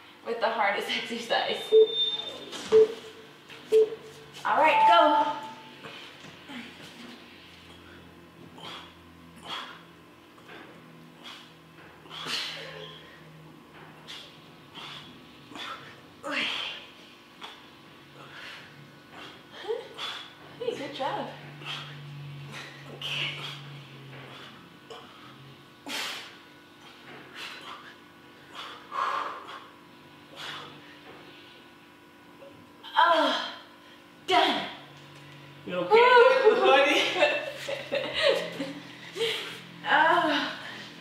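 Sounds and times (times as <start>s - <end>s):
steady low hum: 0.0s - 41.0s
timer short low beeps: 1.6s - 3.1s, 4.6s - 5.7s
people breathing hard: 14.0s - 20.5s, 21.4s - 31.7s, 37.6s - 41.0s.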